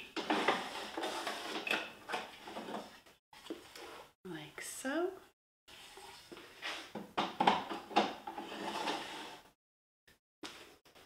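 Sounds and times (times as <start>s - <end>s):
wooden drawer scraping and knocking: 7.2s - 9.4s.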